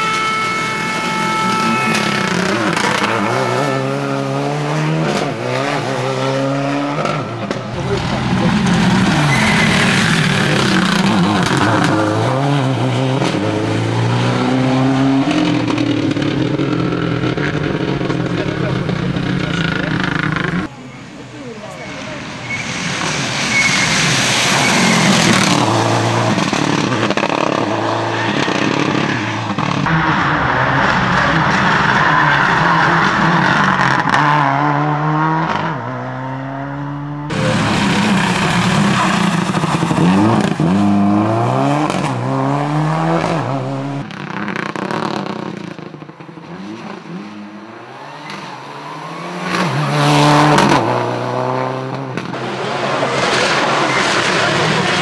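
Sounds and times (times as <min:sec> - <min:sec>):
rally car engine revving past: 0:46.4 - 0:55.0.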